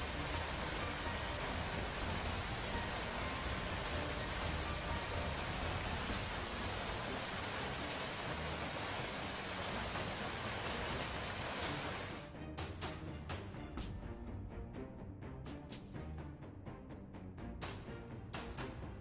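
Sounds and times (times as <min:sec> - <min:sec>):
waterfall rushing: 0:00.0 - 0:12.2.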